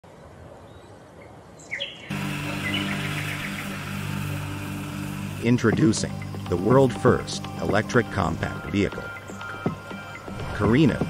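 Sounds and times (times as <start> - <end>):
faint outdoor background noise: 0.0 - 11.0
birds chirping: 0.6 - 11.0
low music bed: 2.1 - 11.0.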